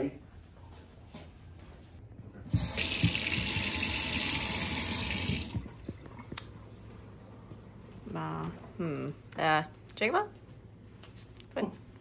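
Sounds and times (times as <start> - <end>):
faucet running into steel sink: 2.5 - 5.9.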